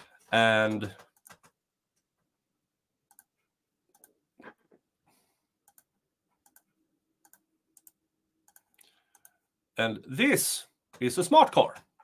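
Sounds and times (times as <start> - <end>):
computer mouse clicks: 3.1 - 3.3, 3.9 - 4.2, 5.6 - 9.4.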